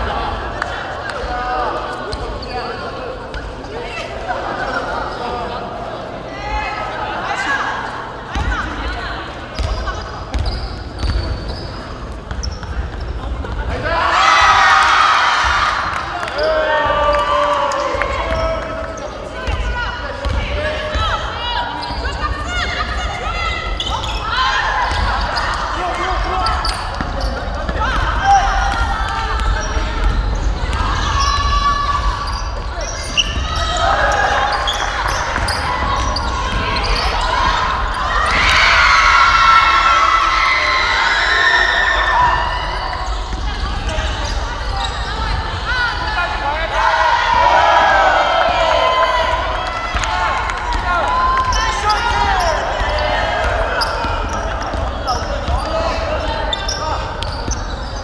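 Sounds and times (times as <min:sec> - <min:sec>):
people shouting in a hall: 0:13.6 - 0:58.0.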